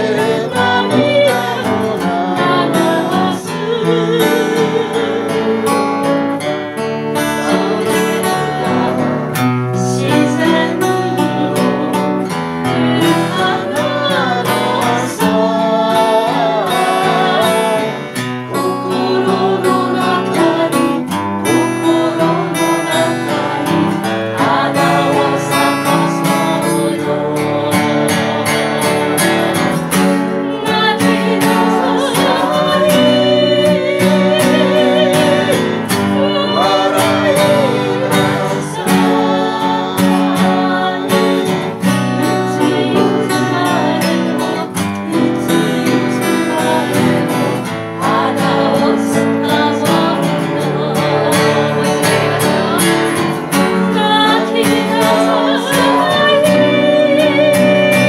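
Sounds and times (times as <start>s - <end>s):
group singing: 0.0s - 58.0s
instrumental accompaniment: 0.0s - 58.0s.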